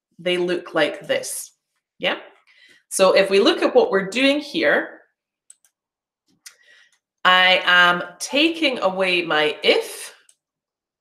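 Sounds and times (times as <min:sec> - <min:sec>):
computer mouse clicks: 0:05.5 - 0:05.8.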